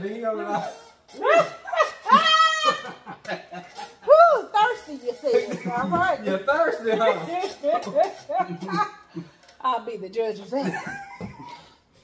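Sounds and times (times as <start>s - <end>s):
person squealing: 0.4s - 2.9s.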